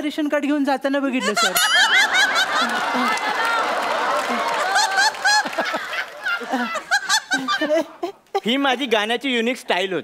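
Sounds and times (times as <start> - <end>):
people laughing and snickering: 1.2 - 8.4.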